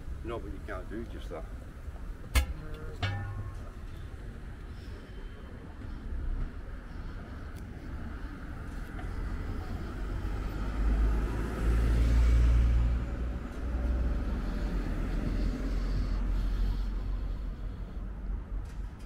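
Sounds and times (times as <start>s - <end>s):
cars driving past: 5.4s - 19.0s.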